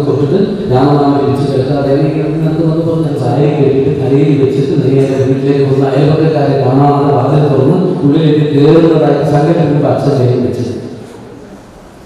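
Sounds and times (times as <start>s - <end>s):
man chanting: 0.0s - 10.9s.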